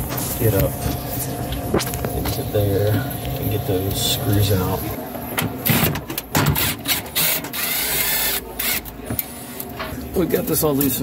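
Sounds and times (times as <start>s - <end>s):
cordless drill running: 6.6s - 8.8s.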